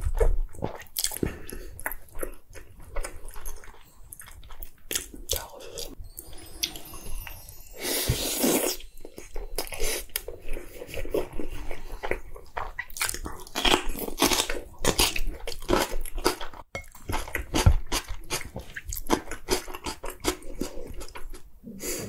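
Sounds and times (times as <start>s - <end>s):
close chewing with wet mouth smacks: 0.0s - 6.0s, 10.1s - 21.4s.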